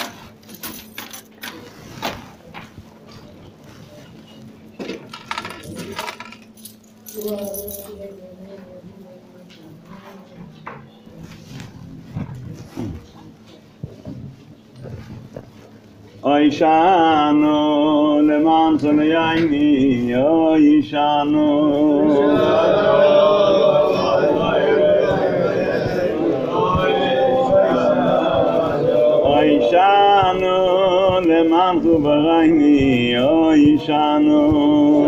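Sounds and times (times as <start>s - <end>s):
rustling and light clattering: 0.0s - 16.2s
men praying in undertone: 16.2s - 35.0s.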